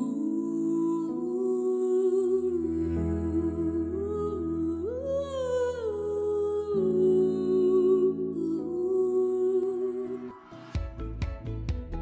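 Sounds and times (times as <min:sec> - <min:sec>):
slow song with humming voice: 0:00.0 - 0:11.4.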